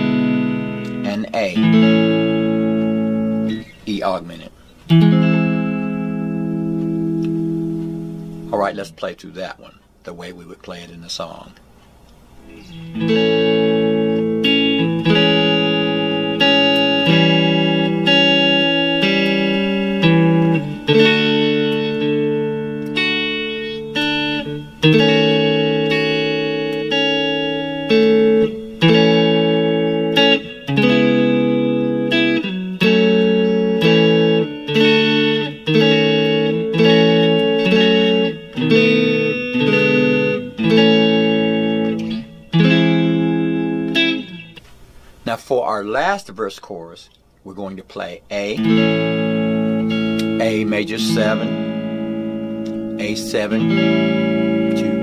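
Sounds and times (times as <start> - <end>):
electric guitar chords ringing: 0.0 - 45.2, 47.6 - 55.0.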